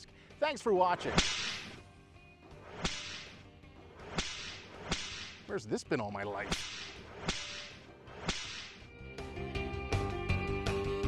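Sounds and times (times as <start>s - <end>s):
whip-like cracks with hiss: 1.1s - 1.8s, 2.6s - 3.4s, 4.0s - 5.4s, 6.5s - 8.9s.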